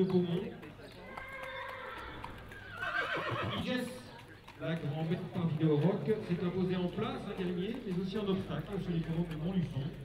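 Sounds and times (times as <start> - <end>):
horse whinnying: 1.1 - 3.7.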